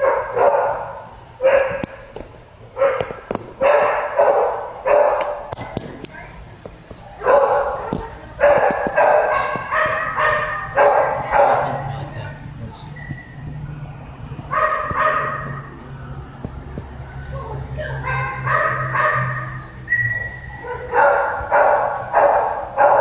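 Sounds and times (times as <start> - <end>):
dog barking: 0.0 - 1.9, 2.8 - 5.5, 7.2 - 11.8, 14.5 - 15.7, 18.0 - 19.6, 20.2 - 23.0.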